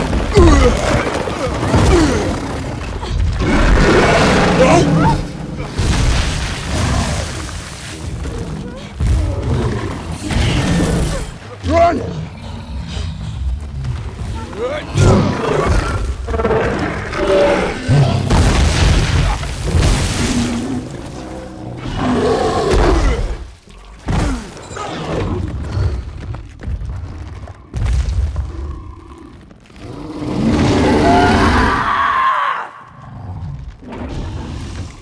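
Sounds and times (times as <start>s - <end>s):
monster roaring: 0.0s - 5.8s, 14.6s - 18.6s, 29.8s - 35.0s.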